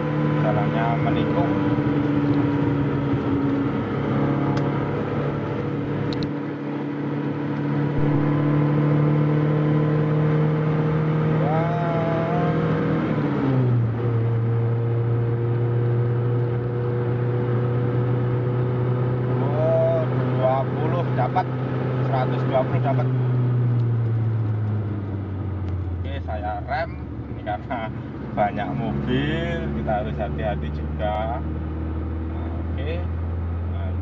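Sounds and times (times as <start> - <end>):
car engine accelerating: 0.0 - 34.0.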